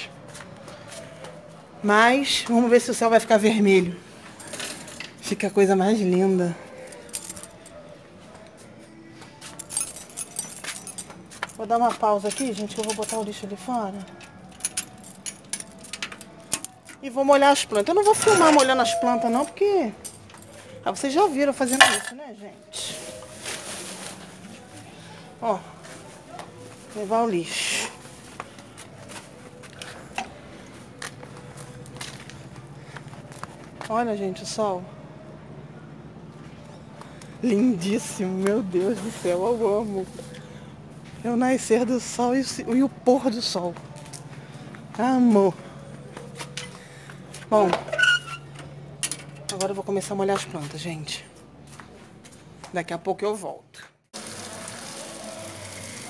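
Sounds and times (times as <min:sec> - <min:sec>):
footsteps: 0:00.0 - 0:02.5, 0:06.0 - 0:13.4, 0:22.7 - 0:34.2, 0:42.4 - 0:47.9, 0:50.2 - 0:52.9
keys jangling: 0:06.8 - 0:07.9, 0:09.4 - 0:17.0, 0:17.8 - 0:20.7.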